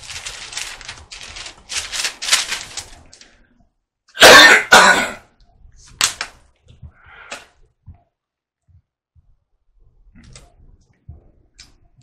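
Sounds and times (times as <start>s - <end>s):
man coughing harshly: 4.2s - 5.3s.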